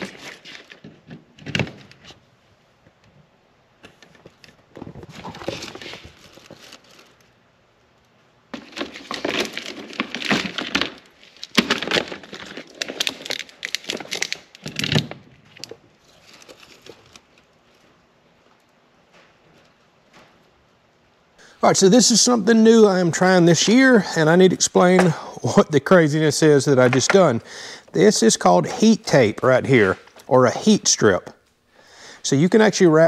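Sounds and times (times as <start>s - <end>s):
cables and plastic rustling: 0.0s - 20.6s.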